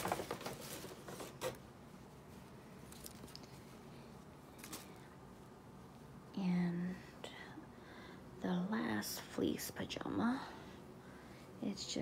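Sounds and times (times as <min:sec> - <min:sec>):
woman speaking softly: 0:06.3 - 0:07.6, 0:08.4 - 0:10.6, 0:11.6 - 0:12.0.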